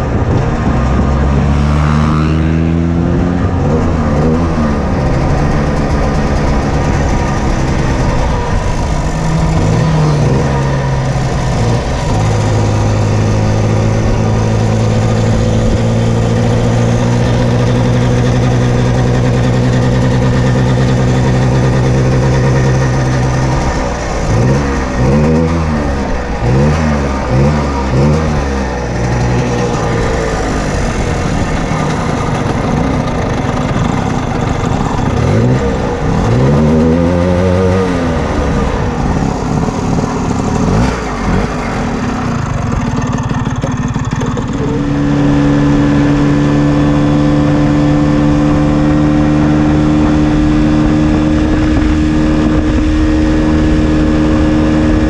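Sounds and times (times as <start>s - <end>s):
scooter engine revving: 0.0s - 55.0s.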